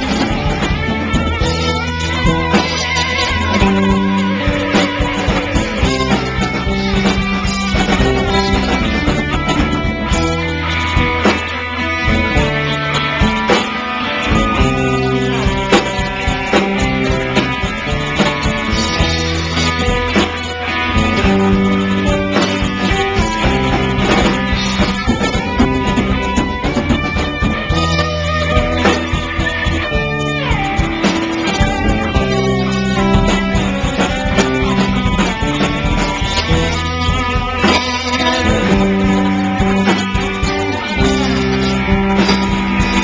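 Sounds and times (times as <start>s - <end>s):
rock band playing loudly: 0.0s - 43.0s.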